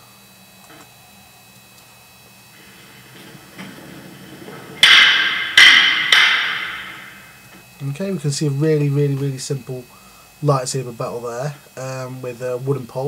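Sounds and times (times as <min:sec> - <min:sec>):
prop poles clashing: 0:02.6 - 0:07.5.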